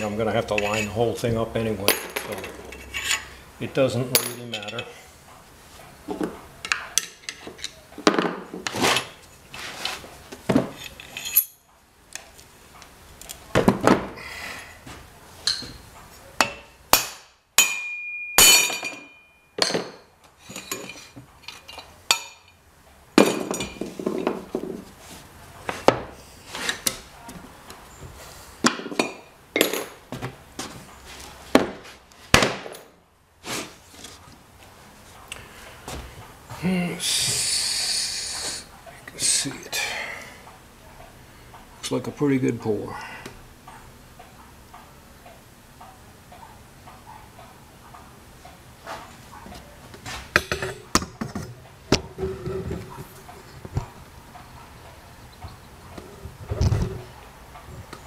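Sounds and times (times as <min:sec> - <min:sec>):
metal parts clinking on wood: 0:10.7 - 0:11.7, 0:17.7 - 0:22.6
short metallic ring: 0:17.6 - 0:19.7.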